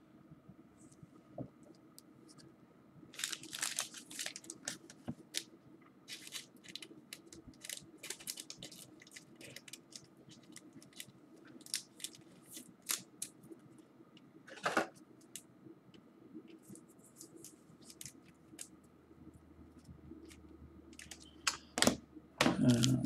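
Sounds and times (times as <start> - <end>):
plastic wrapping crinkling: 3.2 - 5.5, 6.1 - 13.5, 16.5 - 18.7, 20.2 - 21.6.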